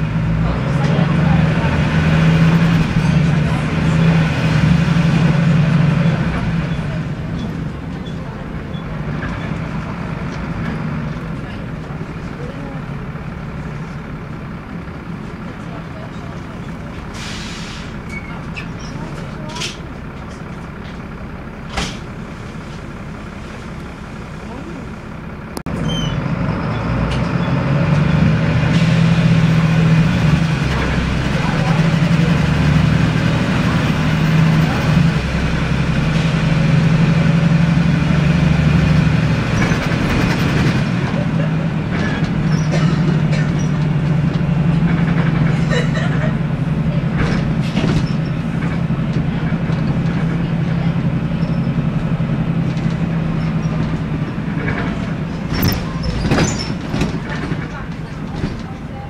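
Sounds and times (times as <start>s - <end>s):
bus diesel engine: 0.0s - 59.0s.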